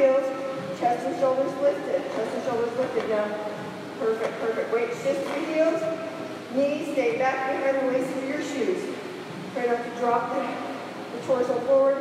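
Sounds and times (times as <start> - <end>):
woman talking: 0.0 - 9.0, 9.6 - 12.0.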